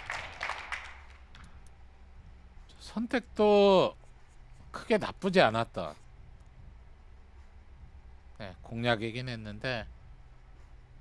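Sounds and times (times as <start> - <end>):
faint applause: 0.0 - 1.3
scattered hand claps: 0.0 - 1.5.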